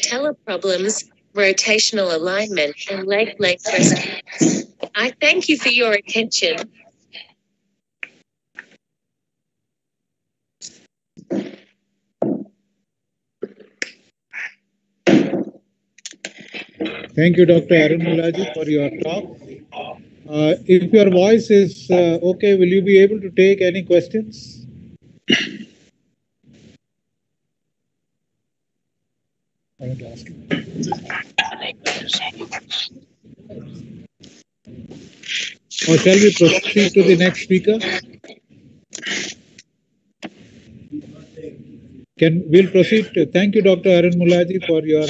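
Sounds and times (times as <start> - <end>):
choppy microphone noise bursts: 0.0 - 6.8, 29.8 - 39.6
indistinct voices over video call: 0.0 - 7.4, 16.0 - 25.0, 29.8 - 39.6, 40.2 - 45.0.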